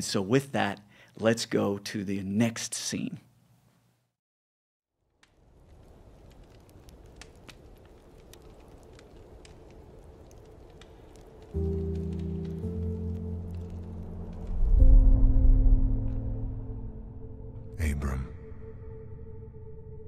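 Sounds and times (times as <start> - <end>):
light crackles: 5.0 - 16.4
low sustained music chord: 11.6 - 17.8.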